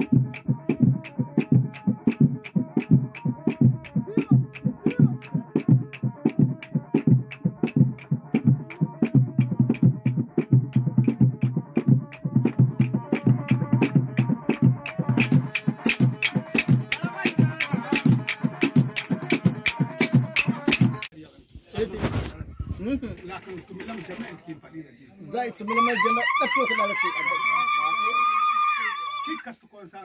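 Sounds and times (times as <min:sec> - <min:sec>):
hand drums playing fast rhythm: 0:00.0 - 0:21.1.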